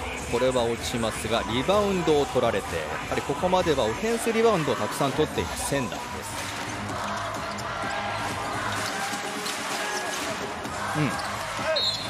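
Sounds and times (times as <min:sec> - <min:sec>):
arena music: 0:00.0 - 0:12.0.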